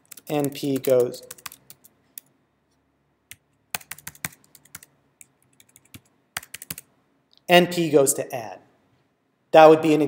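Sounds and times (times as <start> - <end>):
keyboard typing: 0.0 - 2.3, 3.3 - 6.9.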